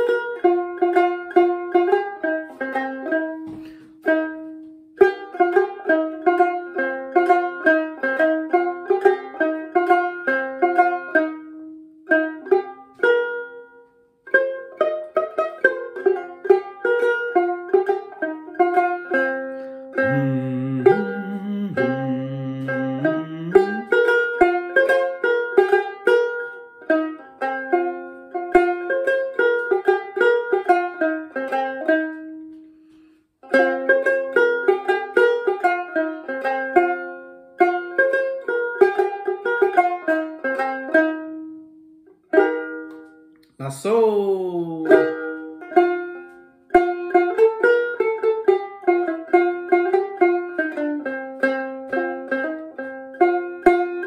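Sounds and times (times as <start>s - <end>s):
plucked lute melody: 0.0s - 43.6s, 44.3s - 54.0s
low voice singing: 20.0s - 24.1s, 43.6s - 45.2s.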